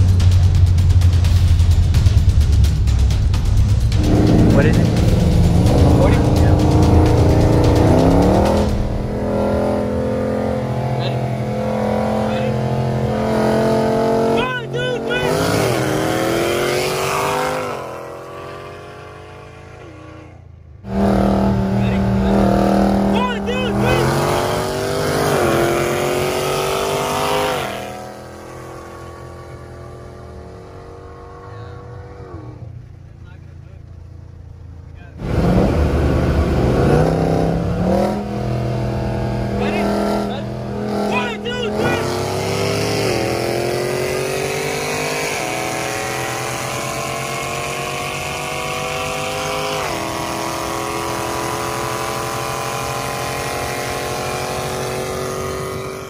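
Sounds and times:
car engines at full throttle: 0:00.0 - 0:56.0.

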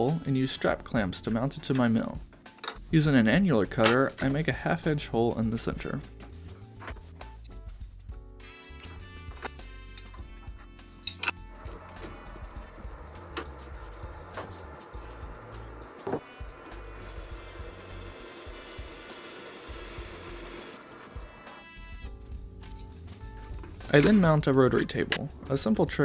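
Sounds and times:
background music: 0:00.0 - 0:26.0
milling machine cutting metal: 0:11.5 - 0:22.1.

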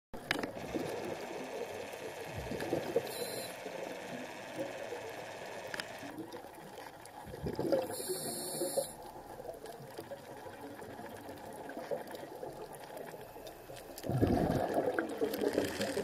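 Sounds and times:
faint clicks: 0:00.2 - 0:06.2
muffled underwater water wash: 0:00.2 - 0:16.0.

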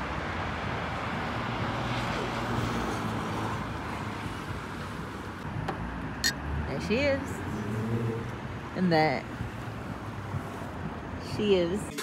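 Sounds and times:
cars passing close by: 0:00.0 - 0:12.0
road traffic rumble: 0:00.0 - 0:12.0.

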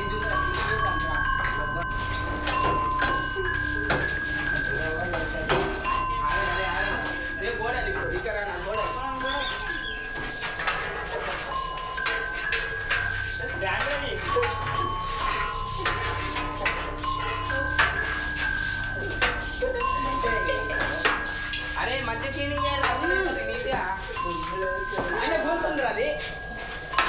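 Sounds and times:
slow melody over low drone: 0:00.0 - 0:27.0.

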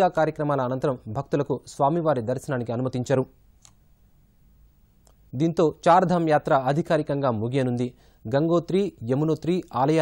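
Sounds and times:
newsreader speaking: 0:00.0 - 0:03.4, 0:05.3 - 0:10.0.

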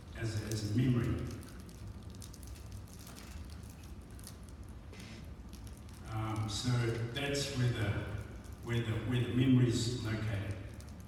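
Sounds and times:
low hum of large room: 0:00.0 - 0:11.0
faint ticks and rustles: 0:00.5 - 0:08.8.

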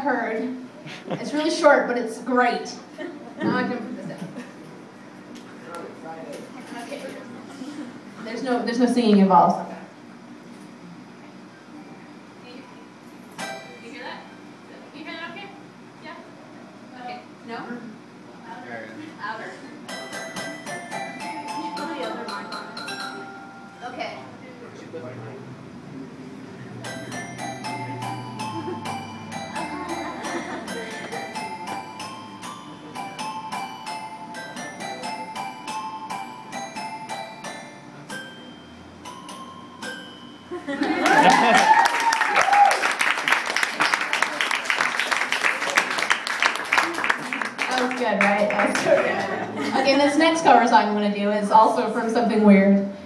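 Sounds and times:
toy piano tune: 0:19.9 - 0:23.8, 0:26.8 - 0:40.6.

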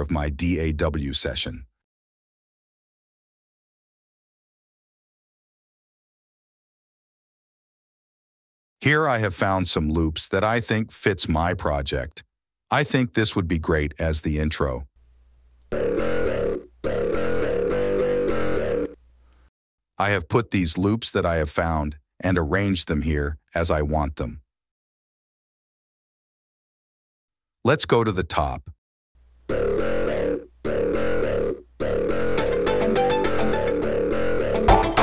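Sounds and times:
synthesized chord music loop: 0:32.3 - 0:35.0.

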